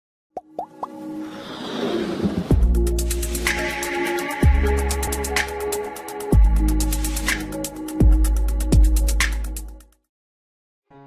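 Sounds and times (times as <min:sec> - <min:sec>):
quick plops rising in pitch: 0:00.4 - 0:01.0.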